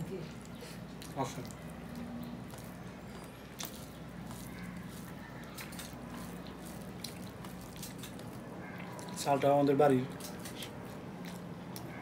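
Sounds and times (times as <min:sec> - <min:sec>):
fingers squishing food: 0:00.3 - 0:09.3.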